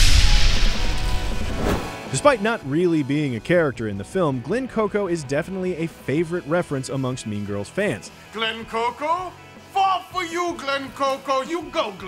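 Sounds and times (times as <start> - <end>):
low rumble: 0.0 - 2.0
hard hit with rushing whoosh: 0.0 - 2.1.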